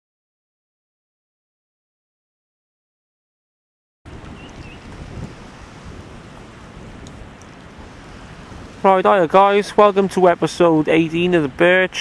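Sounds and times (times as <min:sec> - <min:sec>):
wind noise on microphone: 0:04.1 - 0:10.3
choppy water washing: 0:04.1 - 0:12.0.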